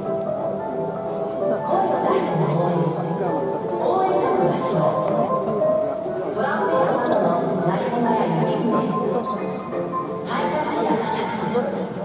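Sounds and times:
crowd voices: 0:00.0 - 0:12.0
music over stadium speakers: 0:00.0 - 0:12.0.

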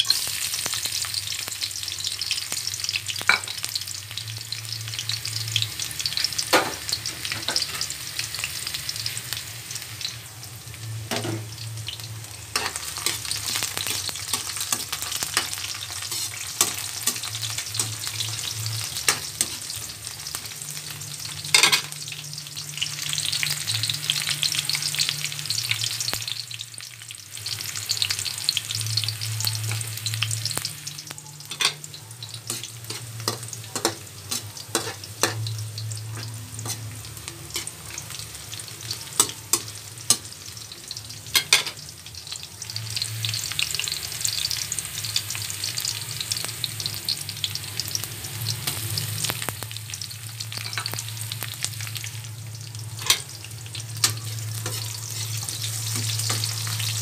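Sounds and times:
garlic sizzling in oil: 0:00.0 - 0:57.0
metal ladle scraping wok: 0:12.5 - 0:19.8, 0:32.4 - 0:35.6, 0:36.2 - 0:38.0, 0:54.0 - 0:56.8.

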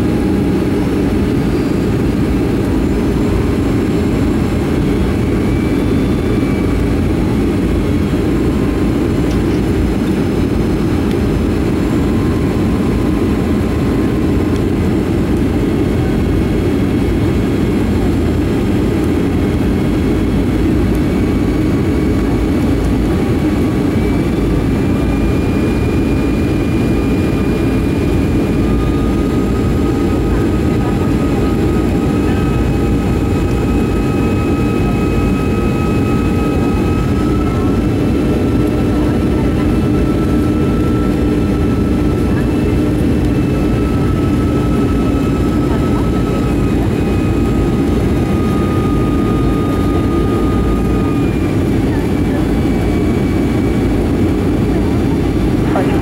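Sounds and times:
airplane cabin engine rumble: 0:00.0 - 0:56.0.

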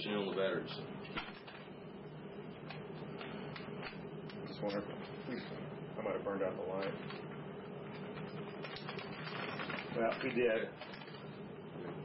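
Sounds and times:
low electrical hum: 0:00.0 - 0:12.0
small clicks and rattles: 0:07.9 - 0:11.3.

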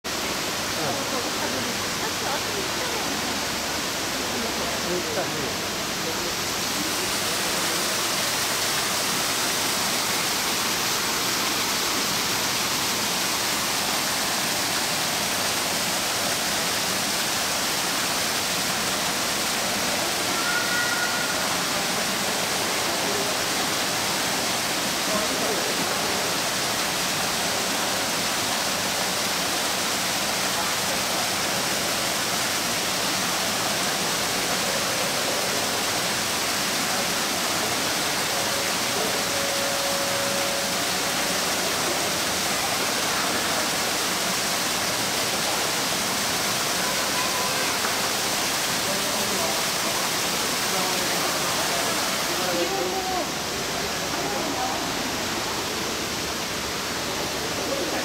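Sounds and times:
waterfall pouring into pool: 0:00.1 - 0:58.0.

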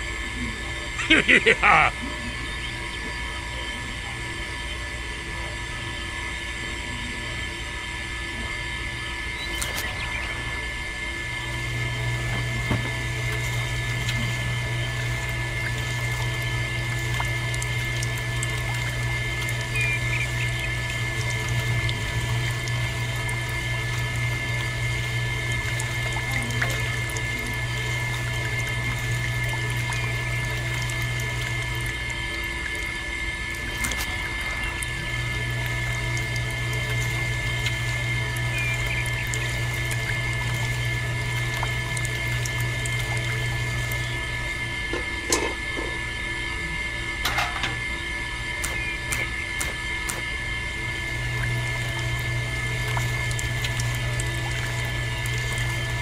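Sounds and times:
small electric motor whine: 0:00.0 - 0:56.0.

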